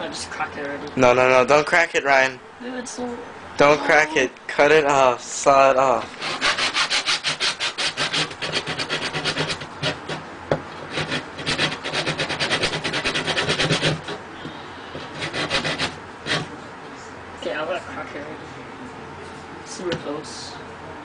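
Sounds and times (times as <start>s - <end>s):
hand saw cutting wood: 6.2s - 10.2s, 10.9s - 14.2s, 15.0s - 16.5s.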